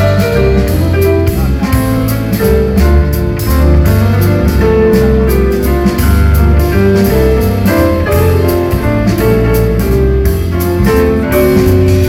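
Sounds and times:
bass line: 0:00.0 - 0:12.0
guitar: 0:00.0 - 0:12.0
live band instrumental: 0:00.0 - 0:12.0.

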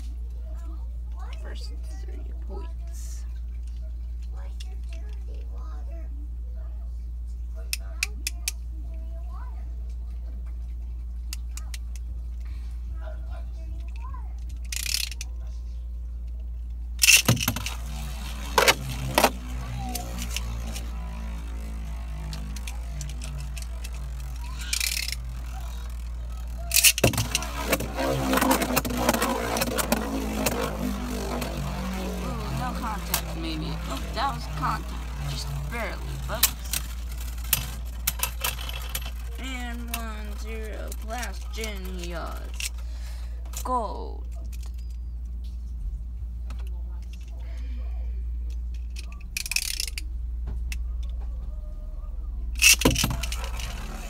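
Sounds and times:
spinning tops whirring: 0:14.5 - 0:15.3, 0:16.8 - 0:43.8, 0:48.5 - 0:51.1, 0:52.4 - 0:54.0
spinning tops launched: 0:17.0 - 0:42.8, 0:52.6 - 0:54.0.

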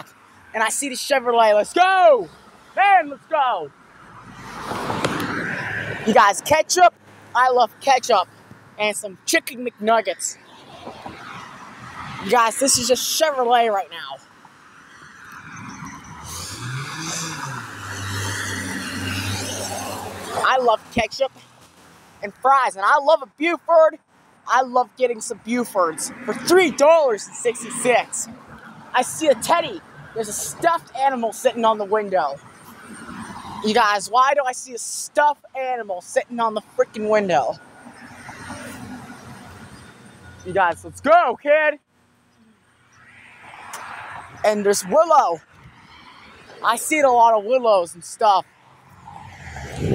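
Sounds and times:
vehicle road noise: 0:00.0 - 0:49.9
car passing by: 0:03.9 - 0:07.4, 0:10.2 - 0:12.8, 0:14.5 - 0:20.6, 0:32.5 - 0:33.7, 0:37.6 - 0:40.5, 0:42.9 - 0:46.6, 0:48.4 - 0:49.9.

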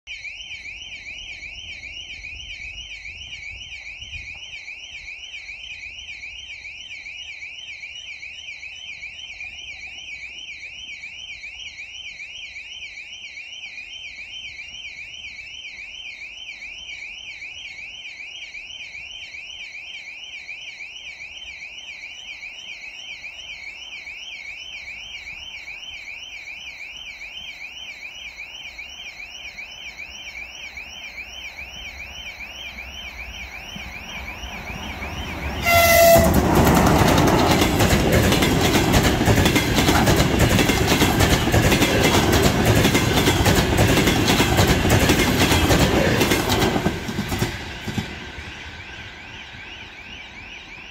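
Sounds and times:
electronic warbling alarm: 0:00.1 - 0:50.9.

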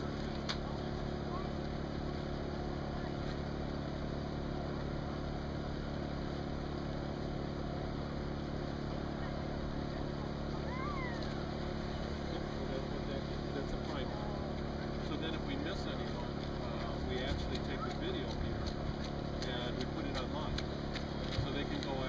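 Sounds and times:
low outdoor drone: 0:00.0 - 0:22.0
running footsteps on wet pavement: 0:15.4 - 0:22.0.

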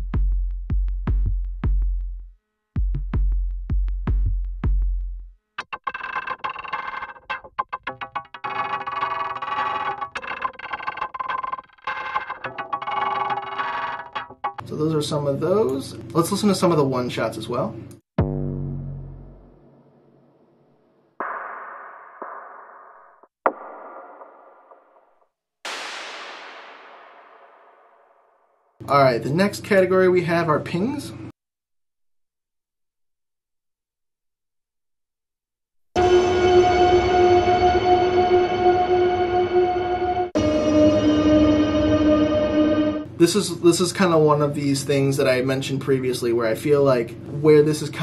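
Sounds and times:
fast ticking percussion: 0:05.6 - 0:14.7
deep booming percussion hits: 0:18.2 - 0:20.0, 0:25.7 - 0:28.6
noise tap: 0:23.5 - 0:28.6
sustained ringing tones: 0:36.0 - 0:43.1.

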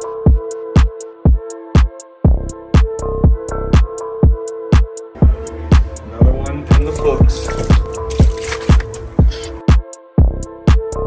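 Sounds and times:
electronic dance music: 0:03.8 - 0:09.8.

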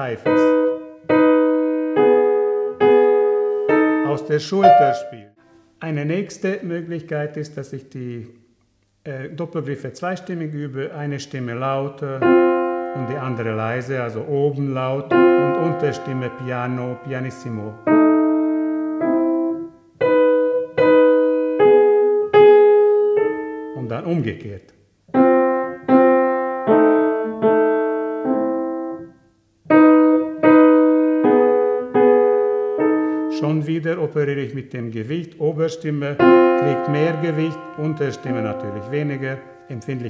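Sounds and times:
piano chords ringing: 0:00.0 - 0:05.4, 0:12.1 - 0:40.0.

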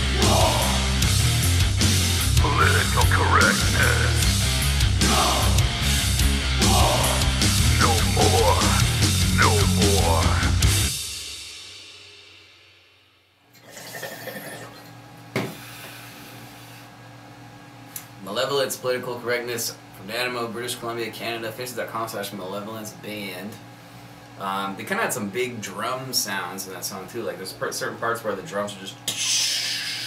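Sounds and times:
high melodic guitar line bending: 0:00.0 - 0:10.9
heavy rock song: 0:00.0 - 0:11.1
water bubbling in a bong: 0:13.6 - 0:14.9.

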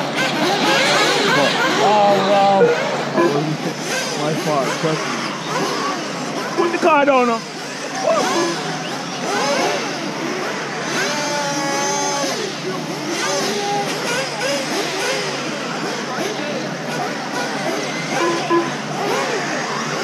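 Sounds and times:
electric toy car motors whining: 0:00.0 - 0:20.0.

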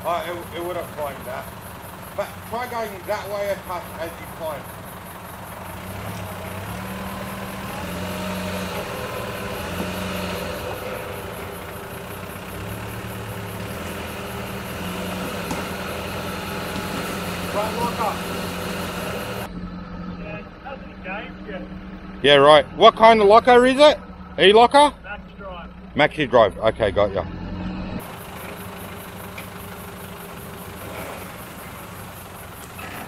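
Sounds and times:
diesel engine at low revs: 0:00.0 - 0:33.0.

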